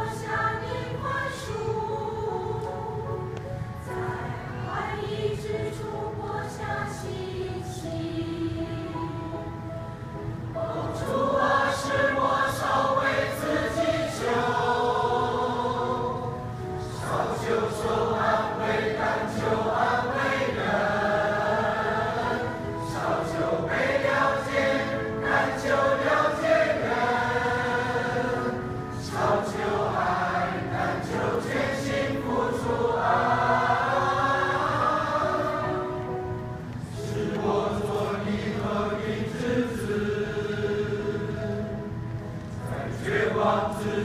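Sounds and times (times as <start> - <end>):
mixed choir singing: 0.0 - 44.0.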